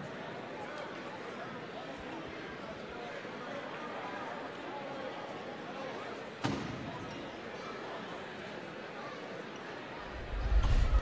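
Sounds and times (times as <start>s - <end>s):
crowd murmur and chatter: 0.0s - 11.0s.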